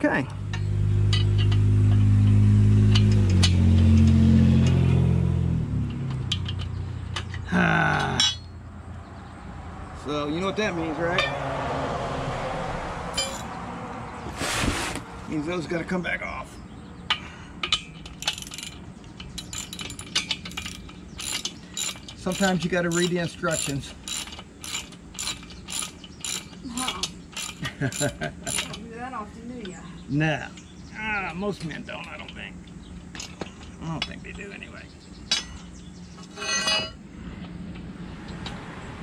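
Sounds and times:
light metal clinks: 17.1s - 28.8s.

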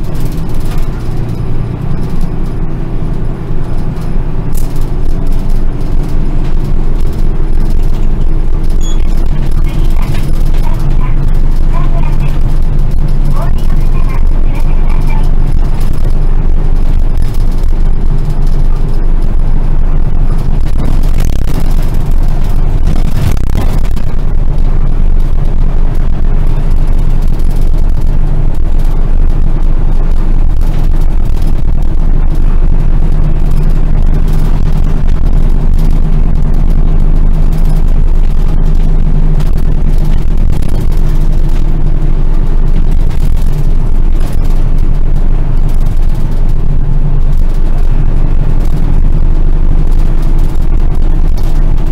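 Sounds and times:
bus diesel engine droning: 0.0s - 51.9s
road and tyre noise: 0.0s - 51.9s.

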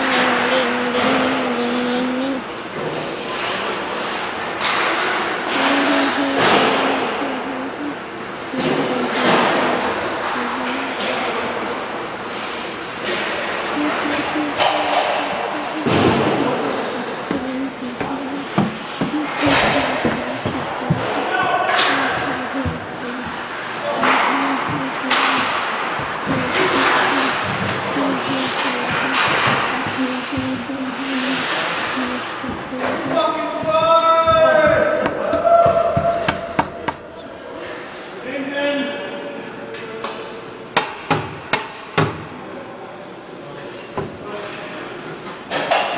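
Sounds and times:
voices echoing in arena: 0.0s - 40.8s
pucks and sticks slamming boards: 18.4s - 30.7s.

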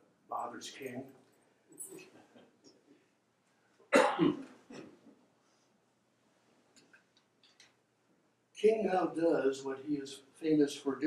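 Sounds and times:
man coughing: 3.9s - 5.0s.

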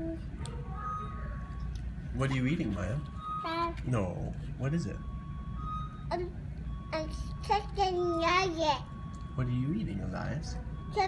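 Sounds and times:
child vocal sound: 0.0s - 0.3s
low steady background hum: 0.0s - 11.0s.

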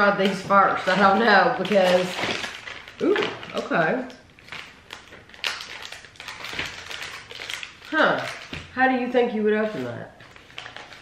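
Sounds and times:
paper packaging crinkling: 0.0s - 11.0s.

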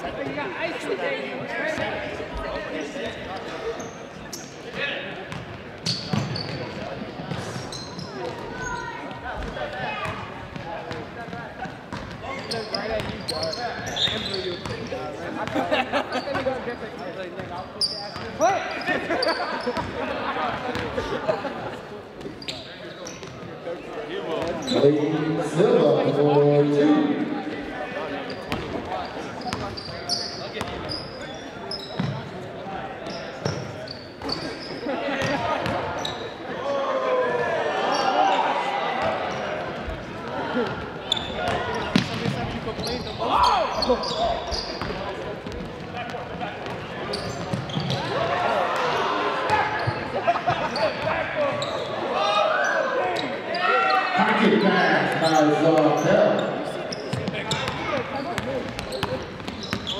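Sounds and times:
spectators' voices: 0.0s - 59.9s.

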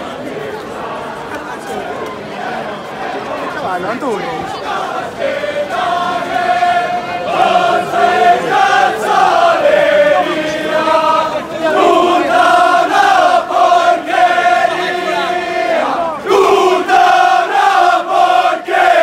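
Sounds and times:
crowd of men singing in unison: 4.1s - 19.0s.

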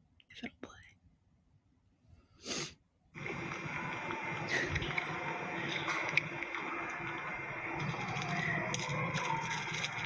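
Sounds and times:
noisy background: 3.1s - 10.0s.

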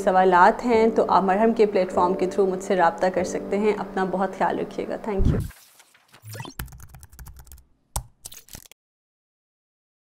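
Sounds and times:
keyboard typing: 6.2s - 8.8s.

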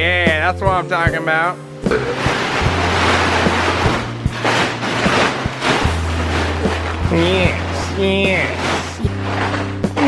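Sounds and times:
background music with bass line: 0.0s - 10.0s
plastic tarp rustling and crinkling: 0.3s - 10.0s.

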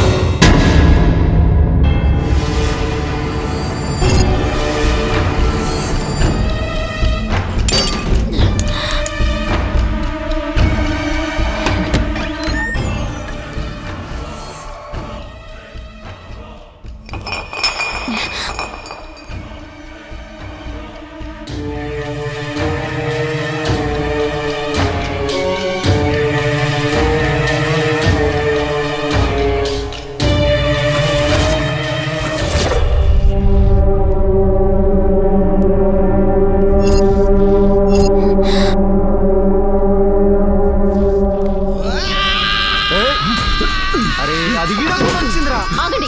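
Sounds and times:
film music: 0.0s - 46.0s
glass bottle clinking on hard floor: 17.1s - 19.4s.

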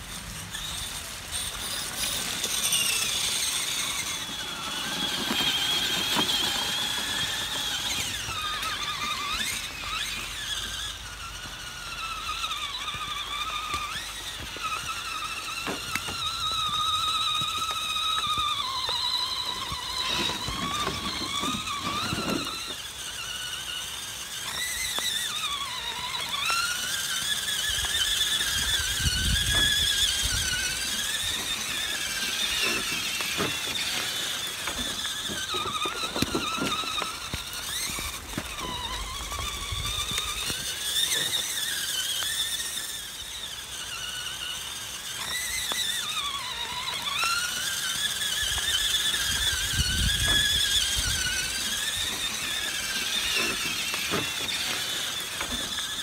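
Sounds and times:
rc truck electric motor whine: 0.0s - 56.0s.

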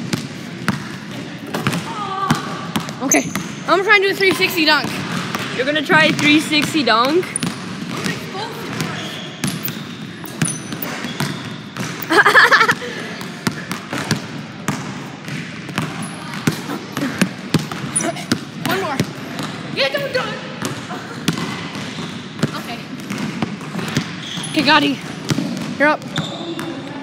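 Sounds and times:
voices in gym: 0.0s - 27.0s
basketball bouncing on hardwood floor: 1.6s - 26.8s.

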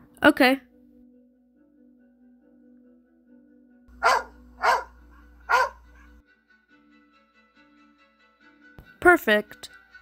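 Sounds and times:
dog barking: 4.0s - 6.2s.

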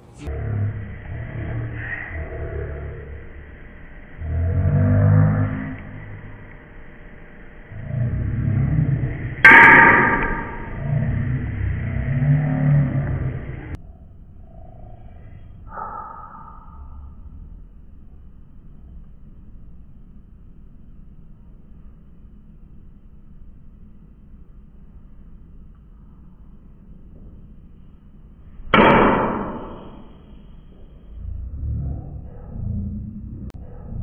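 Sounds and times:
short higher sound: 0.0s - 13.8s
slowed deep rumbling: 0.0s - 34.0s.

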